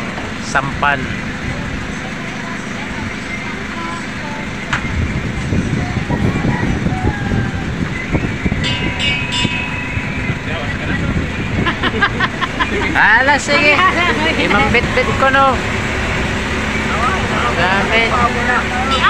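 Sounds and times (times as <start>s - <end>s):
boat engine running at low speed: 0.0s - 19.0s.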